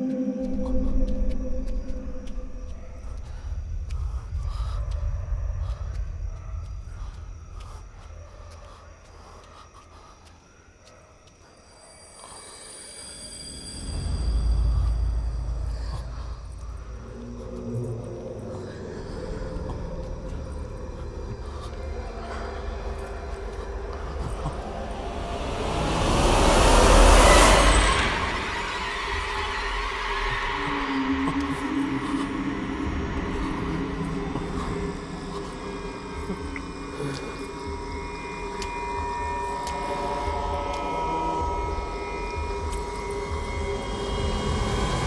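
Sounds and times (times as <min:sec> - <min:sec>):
low rumbling drone: 0:00.0 - 0:08.8, 0:13.3 - 0:45.0
low uneven rumble: 0:14.4 - 0:29.6.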